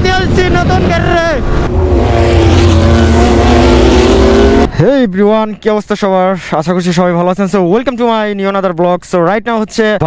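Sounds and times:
wind and road rush: 0:00.0 - 0:05.0
motorcycle engine at high revs: 0:01.8 - 0:04.7.

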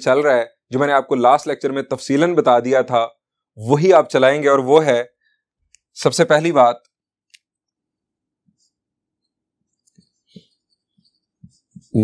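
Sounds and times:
marker scratching on whiteboard: 0:09.9 - 0:12.0.

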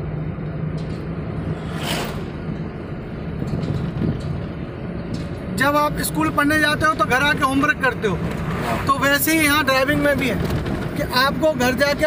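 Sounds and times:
car engine and tyres inside cabin: 0:00.0 - 0:12.0.

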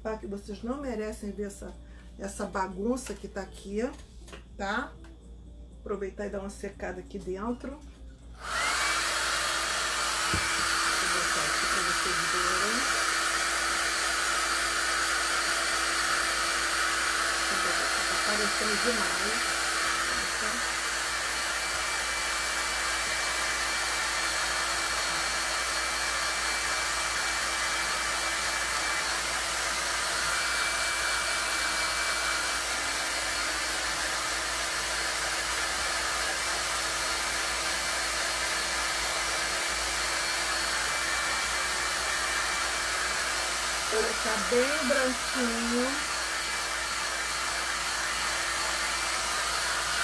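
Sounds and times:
hot-air dryer blowing with motor whine: 0:08.3 - 0:50.0.

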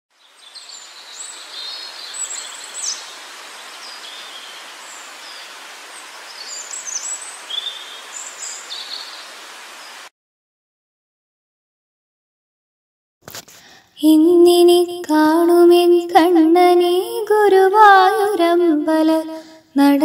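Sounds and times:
songbirds chirping: 0:00.1 - 0:10.1
steady hiss: 0:00.2 - 0:10.1.

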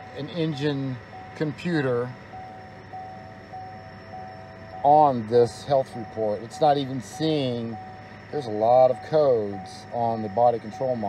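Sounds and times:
steady mid-pitched tone: 0:00.0 - 0:11.0.

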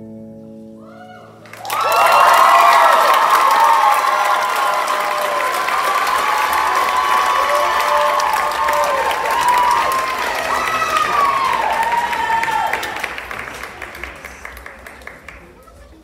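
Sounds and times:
audience cheering and whooping: 0:01.0 - 0:15.0
audience applauding: 0:01.4 - 0:16.0.

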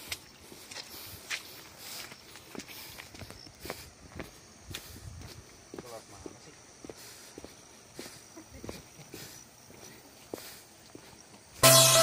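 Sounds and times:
footsteps on footpath: 0:00.0 - 0:11.6.

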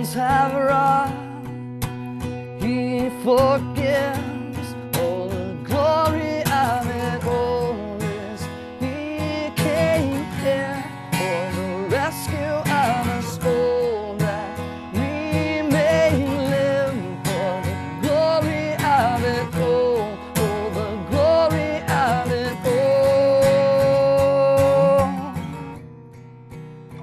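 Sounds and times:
man singing: 0:00.0 - 0:01.7, 0:02.3 - 0:25.8
acoustic guitar strumming: 0:00.0 - 0:27.0.

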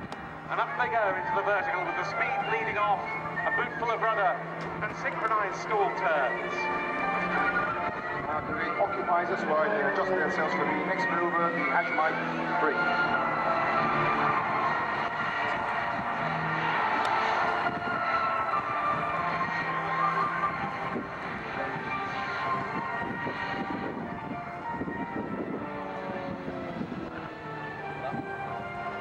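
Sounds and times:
music over public address: 0:00.0 - 0:29.0
propeller plane engines droning: 0:00.0 - 0:29.0.

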